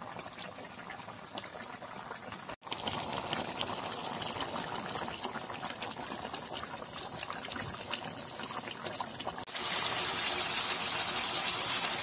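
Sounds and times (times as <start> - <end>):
curry bubbling in a pot: 0.0 - 12.0.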